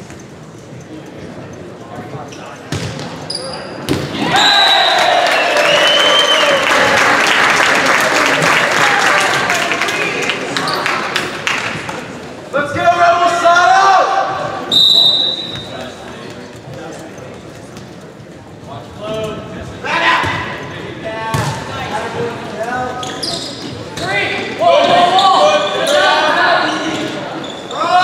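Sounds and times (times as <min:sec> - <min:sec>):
crowd voices in a gym: 0:00.0 - 0:28.0
volleyball bouncing on gym floor: 0:02.7 - 0:03.2
referee's whistle: 0:14.7 - 0:15.7.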